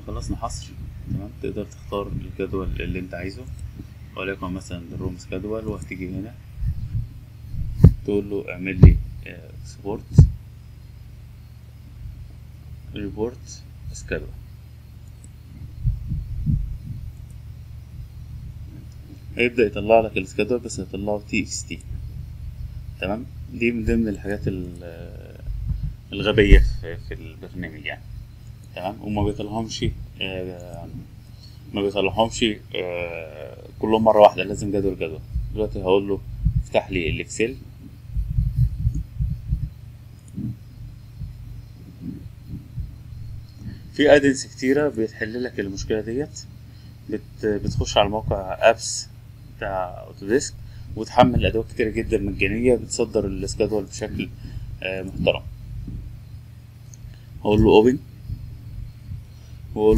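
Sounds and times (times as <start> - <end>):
soft low thumps: 0.0 - 59.9
steady low hum: 0.0 - 59.9
soft dull thumps: 5.0 - 9.3, 10.1 - 10.4, 15.5 - 19.4, 25.4 - 28.5, 36.2 - 44.0, 54.1 - 56.2.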